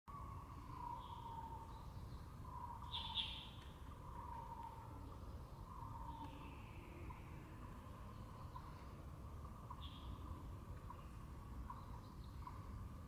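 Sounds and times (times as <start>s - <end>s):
low background rumble: 0.2s - 13.0s
steady wavering whine: 3.6s - 13.0s.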